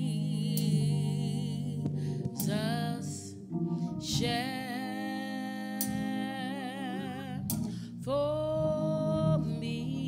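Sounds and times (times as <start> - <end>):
soft steady accompaniment: 0.0 - 10.0.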